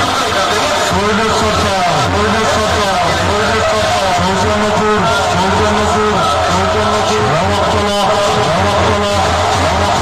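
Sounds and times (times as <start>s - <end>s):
dance track over loudspeakers: 0.0s - 10.0s.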